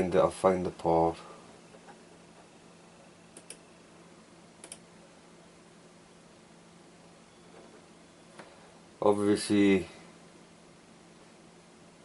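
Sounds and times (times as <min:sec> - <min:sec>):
faint low hum: 0:00.0 - 0:12.0
sharp clicks: 0:03.4 - 0:03.6, 0:04.6 - 0:04.8.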